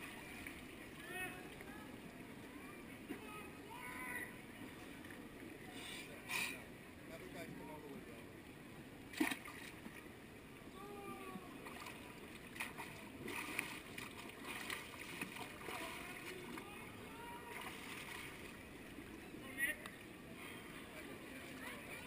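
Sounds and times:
distant crowd voices: 0.0 - 9.2, 9.8 - 22.0
pool water lapping: 0.0 - 22.0
water splashes: 9.0 - 22.0.

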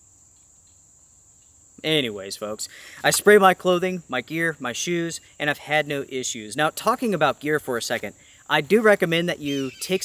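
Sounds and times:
crickets trilling: 0.0 - 10.0
man talking: 1.8 - 10.0.

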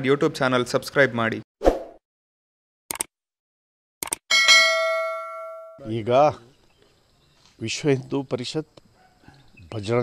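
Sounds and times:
bell chime: 4.3 - 5.9.

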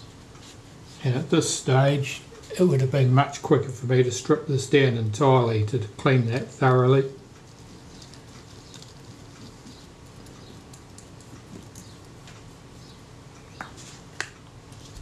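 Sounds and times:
cotton bud scratchy rubbing: 7.5 - 13.0.

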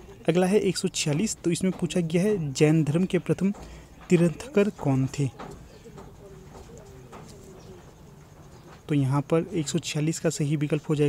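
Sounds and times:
man speaking: 0.0 - 5.4, 8.9 - 11.0
faint wavering bird calls: 5.3 - 9.6.

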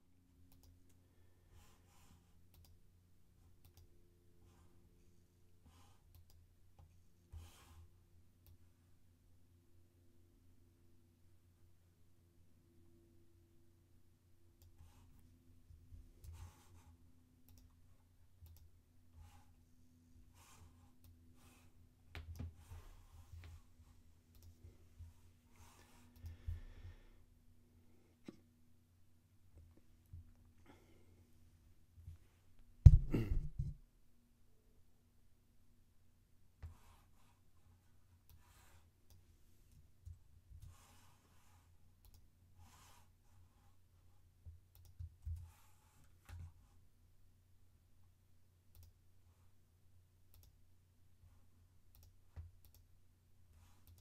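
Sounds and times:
faint steady hum: 0.0 - 54.0
computer mouse clicks: 0.5 - 0.8, 2.4 - 2.8, 3.6 - 3.9, 6.0 - 7.8, 14.6 - 15.0, 16.2 - 17.8, 18.4 - 18.7, 24.3 - 24.6, 25.6 - 26.5, 38.2 - 41.1, 42.0 - 43.0, 44.7 - 46.6, 48.7 - 49.0, 50.3 - 50.6, 51.9 - 52.9, 53.6 - 54.0
faint computer clicks: 44.7 - 45.5, 48.7 - 49.0, 50.3 - 50.6, 51.9 - 52.9.

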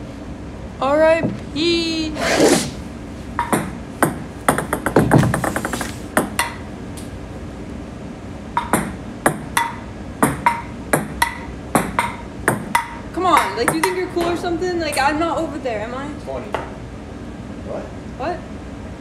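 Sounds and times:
ping-pong ball clicking: 3.4 - 5.1, 6.2 - 6.6, 8.6 - 15.0.

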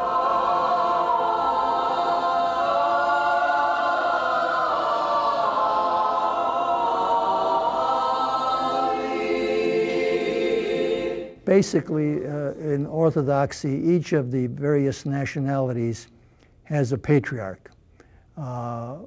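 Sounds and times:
choir chanting: 0.0 - 11.4.

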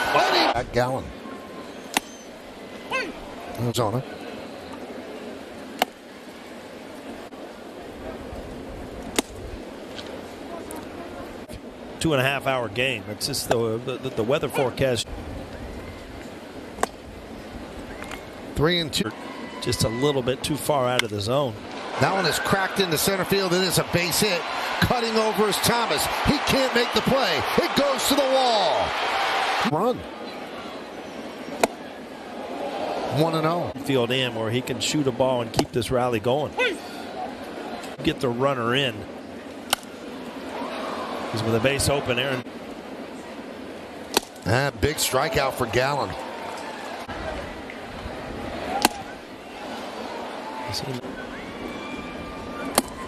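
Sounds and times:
stadium crowd murmur: 0.0 - 14.8, 18.7 - 53.0.

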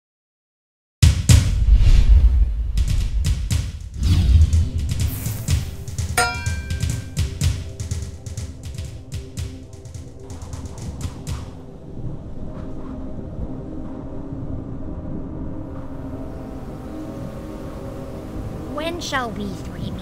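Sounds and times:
dramatic soundtrack music: 1.3 - 20.0
bright ringing hit: 6.2 - 7.2
low sustained notes: 11.6 - 20.0.

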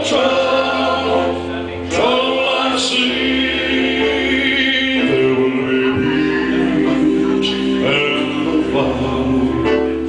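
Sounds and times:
choir-like harmony voices: 0.0 - 10.0
man singing gospel into microphone: 0.0 - 10.0.

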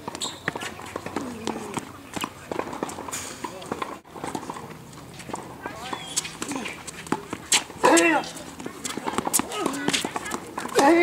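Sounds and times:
racket hitting tennis ball: 0.0 - 11.0
shoes on hard court: 0.0 - 11.0.

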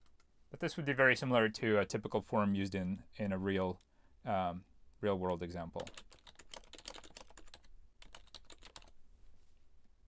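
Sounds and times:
computer keyboard typing: 5.8 - 9.0.

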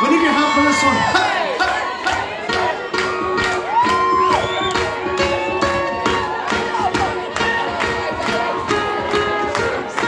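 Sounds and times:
crowd cheering and whooping: 0.0 - 10.0
live band playing: 0.0 - 10.0
long shouted whoop: 3.6 - 6.3.

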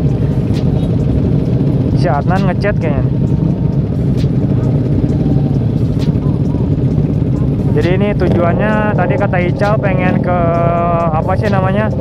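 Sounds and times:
motorcycle engines idling: 0.0 - 12.0.

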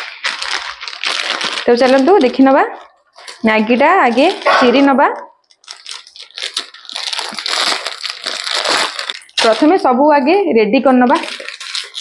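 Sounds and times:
plastic packet crinkling: 0.0 - 10.0, 10.9 - 12.0.

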